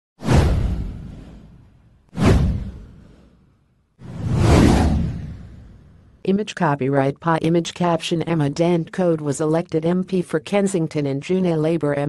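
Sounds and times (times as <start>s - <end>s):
whoosh with deep low end: 0.2s - 6.2s.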